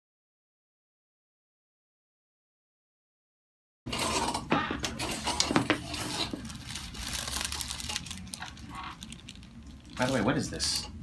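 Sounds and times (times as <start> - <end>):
paper rustling: 5.2 - 10.3.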